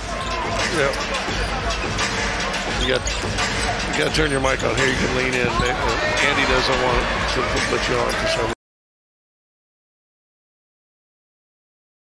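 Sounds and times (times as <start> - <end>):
arena crowd noise: 0.0 - 8.6.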